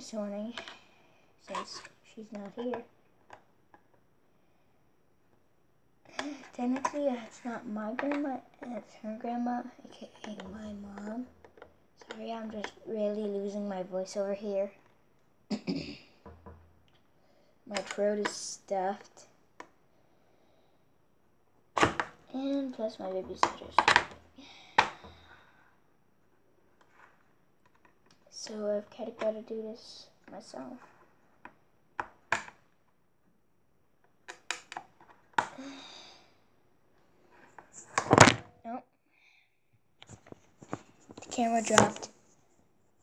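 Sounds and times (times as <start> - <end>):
camera falling and clattering: 37.9 - 38.5.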